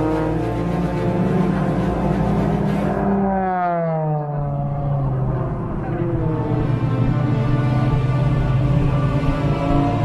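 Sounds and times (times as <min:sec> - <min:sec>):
propeller plane engine passing overhead: 0:00.0 - 0:10.0.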